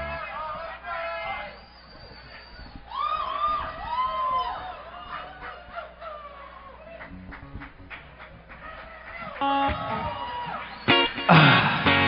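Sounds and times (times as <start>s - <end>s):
audience whooping and cheering: 2.6s - 7.5s, 8.4s - 12.0s
scattered clapping: 6.9s - 11.8s.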